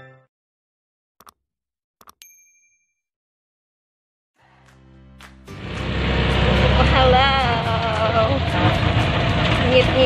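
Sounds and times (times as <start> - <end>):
vehicle engine and road noise: 4.4 - 10.0.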